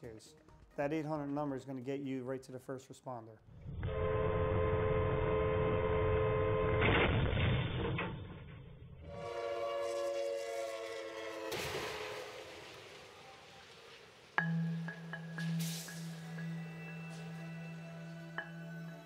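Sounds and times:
train horn blasts: 3.8s - 6.9s, 9.0s - 12.3s.

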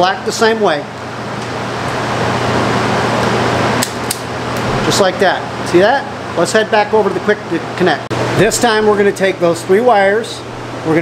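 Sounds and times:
fan rushing with low hum: 0.0s - 11.0s.

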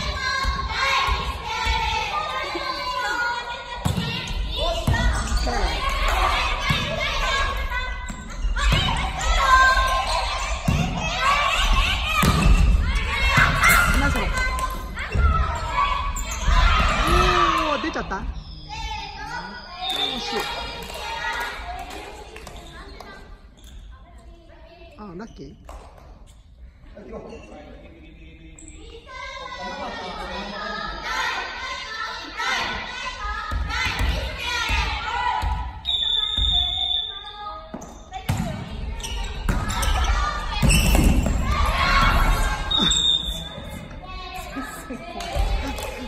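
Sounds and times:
high squeak: 42.5s - 43.8s.

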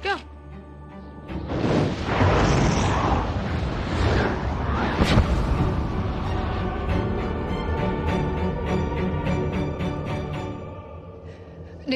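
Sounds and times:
loud rushing rumble: 1.5s - 8.0s.

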